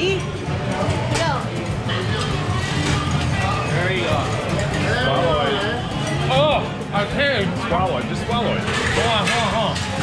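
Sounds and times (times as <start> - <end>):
group of voices talking: 0.0 - 10.0
restaurant background music: 0.0 - 10.0.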